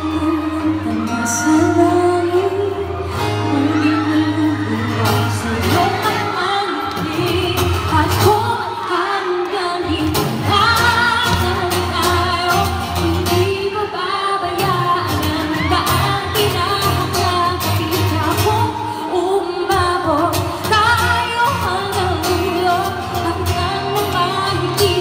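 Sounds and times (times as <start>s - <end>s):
woman singing pop song: 0.0s - 25.0s.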